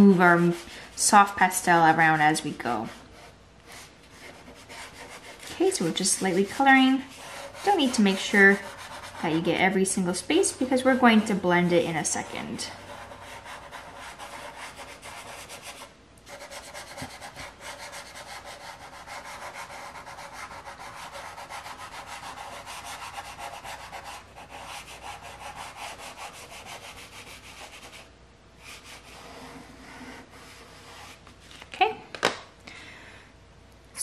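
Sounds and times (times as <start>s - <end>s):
pastel stick scratching paper: 2.8s - 9.5s, 12.1s - 31.2s.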